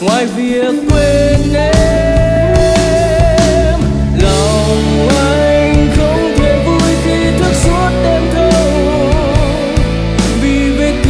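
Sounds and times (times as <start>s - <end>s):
person singing: 0.0s - 11.0s
rock band playing: 0.0s - 11.0s.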